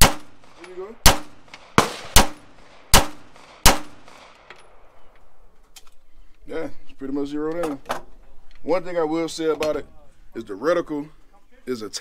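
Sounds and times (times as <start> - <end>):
pistol shots with ringing echo: 0.0 - 5.0.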